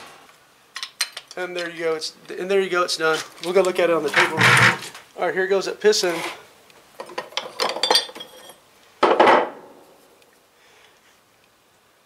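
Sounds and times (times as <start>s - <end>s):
metal part scraping on wood: 4.1s - 4.9s
light metallic clinks and knocks: 7.0s - 8.6s.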